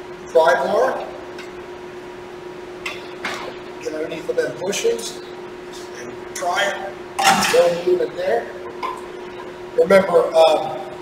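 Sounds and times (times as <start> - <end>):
shop background hum: 0.0 - 11.0.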